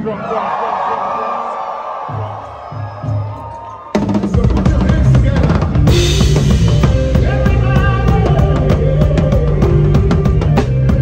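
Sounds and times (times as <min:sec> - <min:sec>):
crowd noise: 0:00.0 - 0:11.0
repeated low bass notes: 0:04.4 - 0:11.0.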